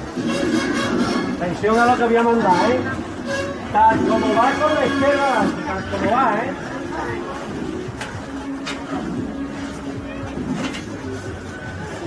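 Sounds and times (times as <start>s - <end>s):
men talking: 1.4s - 3.0s, 3.7s - 7.3s.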